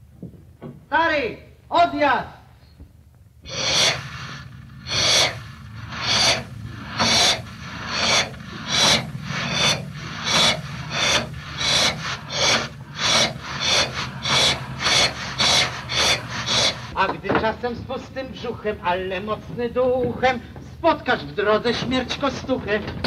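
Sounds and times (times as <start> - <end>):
steam locomotive chuffing: 3.4 - 23.0
low rumble: 3.6 - 19.9.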